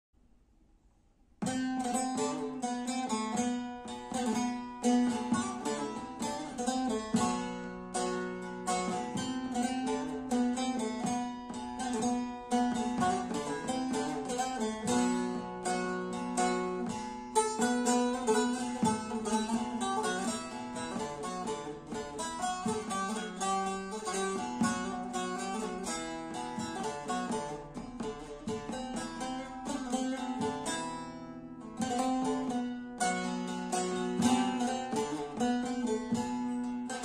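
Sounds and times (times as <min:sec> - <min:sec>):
plucked saz folk melody: 0:01.4 - 0:37.0.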